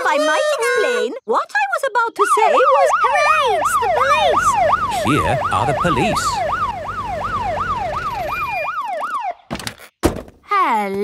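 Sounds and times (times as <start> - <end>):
cartoon police siren wailing: 2.2 - 9.5
short thunks: 9.5 - 10.4.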